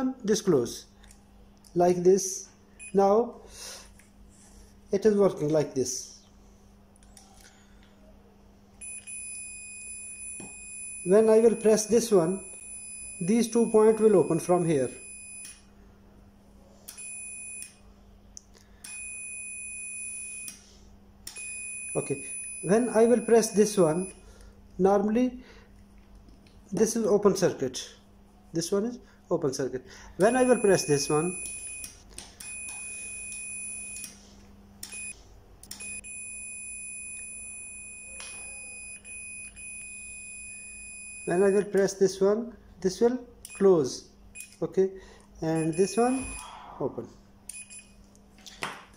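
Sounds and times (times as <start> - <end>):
multimeter continuity beep: 2.8 - 3.1, 8.8 - 15.6, 16.9 - 17.8, 18.8 - 20.6, 21.3 - 24.2, 30.2 - 34.2, 34.8 - 42.0, 44.4 - 44.6, 45.5 - 46.5, 47.5 - 48.0.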